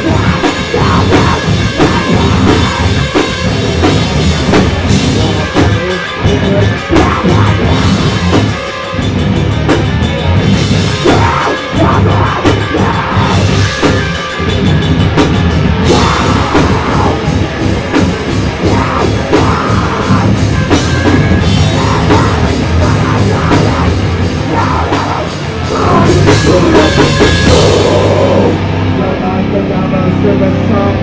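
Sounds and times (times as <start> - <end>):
bass guitar: 0.0 - 31.0
distorted electric guitars: 0.0 - 31.0
drums: 0.0 - 31.0.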